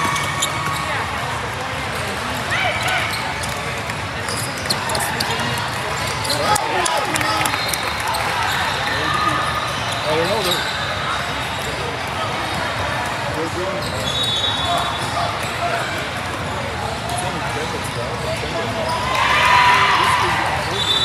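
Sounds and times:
din of voices: 4.3s - 7.7s.

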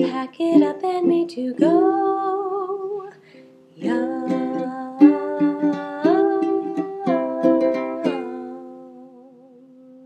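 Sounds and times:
woman singing long notes: 0.0s - 3.2s, 3.8s - 10.0s
ukulele strumming: 0.0s - 10.0s.

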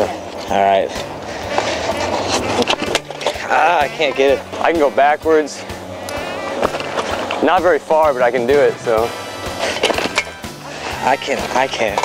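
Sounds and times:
scooter wheels rolling on asphalt: 0.0s - 12.0s.

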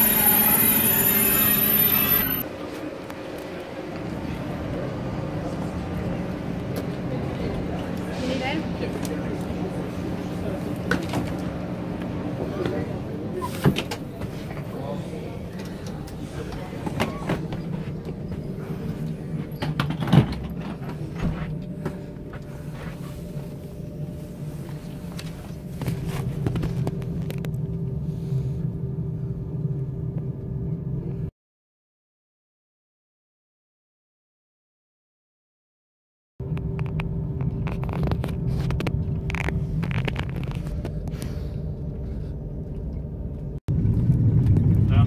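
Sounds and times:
low hum of train equipment: 0.0s - 31.3s, 36.4s - 45.0s
train equipment humming and whining: 0.0s - 31.3s, 36.4s - 43.6s.

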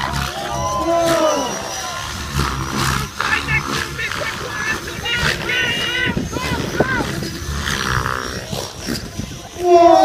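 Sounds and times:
model helicopter rotor whooshing: 0.0s - 10.0s.

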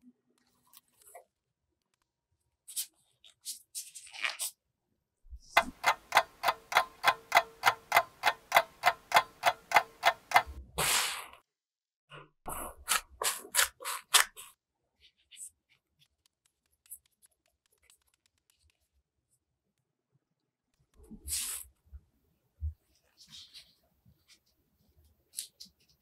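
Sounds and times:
clock ticking: 5.5s - 10.6s.

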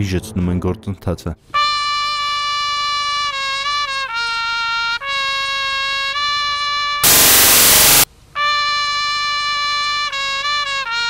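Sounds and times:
trumpet holding long note: 6.8s - 10.8s
loud harsh noise burst: 7.0s - 8.1s.

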